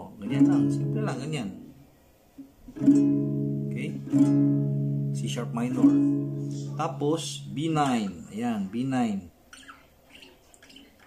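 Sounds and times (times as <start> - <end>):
acoustic guitar chord ringing: 0.2 - 1.8, 2.8 - 8.1.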